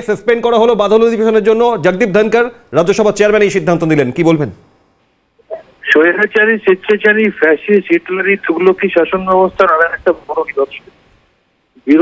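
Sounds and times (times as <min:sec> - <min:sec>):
man talking over telephone: 0:05.8 - 0:10.9.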